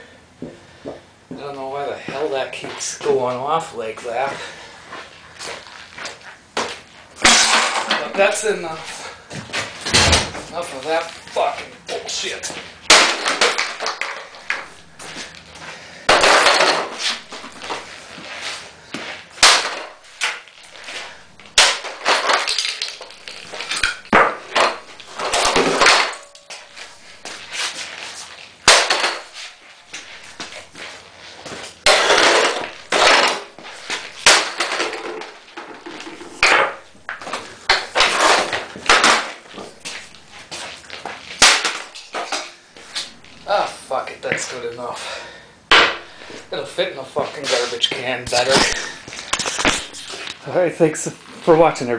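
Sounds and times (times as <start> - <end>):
broken parts clattering on concrete: 5.5 - 17.9, 19.3 - 43.4, 45.7 - 46.6, 47.3 - 50.4.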